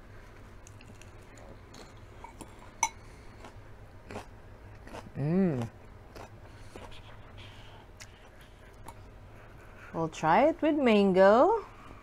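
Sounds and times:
person chewing lettuce: 0:00.2 - 0:09.2.

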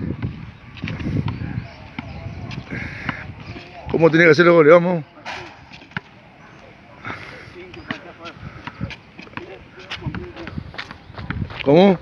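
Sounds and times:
footsteps on concrete: 0:00.1 - 0:04.3, 0:05.6 - 0:12.0
faint voices: 0:00.8 - 0:12.0
ball bouncing on concrete: 0:05.3 - 0:06.2, 0:07.7 - 0:11.5.

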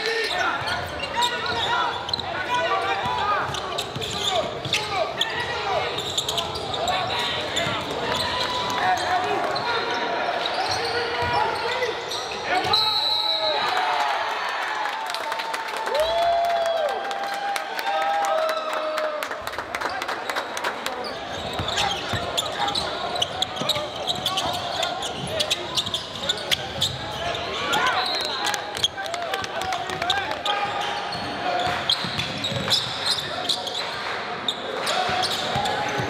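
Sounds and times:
echoing voices in a hall: 0:00.0 - 0:36.0.

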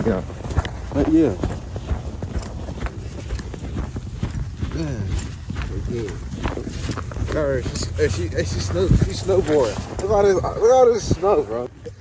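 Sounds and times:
footsteps crunching through snow: 0:00.0 - 0:11.8.

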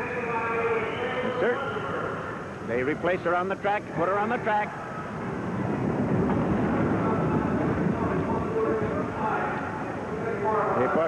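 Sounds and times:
crowd noise: 0:00.0 - 0:11.0
roller skate wheels rumbling: 0:04.8 - 0:10.6.

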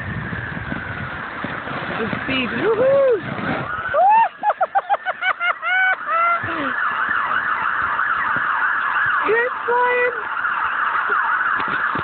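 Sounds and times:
siren yelping: 0:02.3 - 0:12.0.

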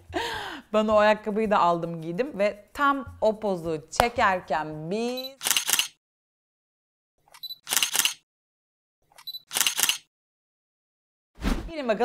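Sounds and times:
camera shutter clicks: 0:05.1 - 0:06.0, 0:07.3 - 0:08.2, 0:09.2 - 0:10.1.

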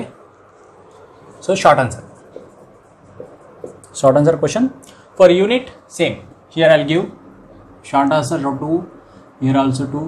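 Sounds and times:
marker scratching on whiteboard: 0:00.9 - 0:04.0
marker tapping: 0:02.1 - 0:04.0.

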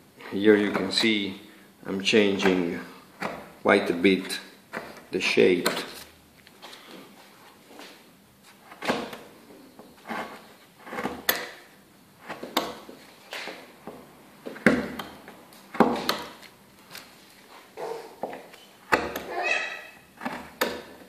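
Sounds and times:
chisel scraping wood: 0:00.4 - 0:01.2, 0:04.7 - 0:06.1, 0:09.8 - 0:11.6, 0:12.2 - 0:13.1, 0:14.6 - 0:16.5, 0:18.2 - 0:21.0.

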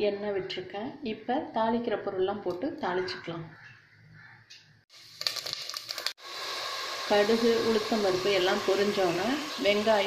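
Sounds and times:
frying hiss: 0:04.9 - 0:10.0
seeds crackling in hot oil: 0:04.9 - 0:10.0.

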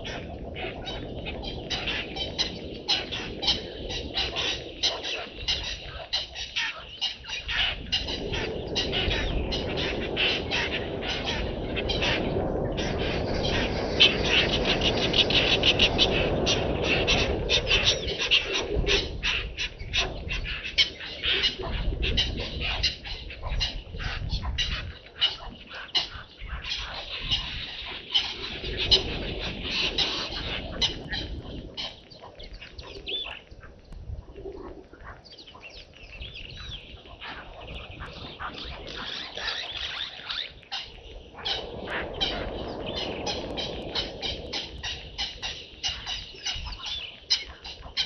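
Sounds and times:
birds chirping in chorus: 0:00.0 - 0:48.0.

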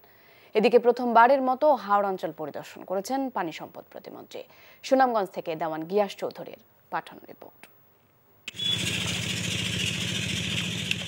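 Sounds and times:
small engine running: 0:08.5 - 0:11.0.

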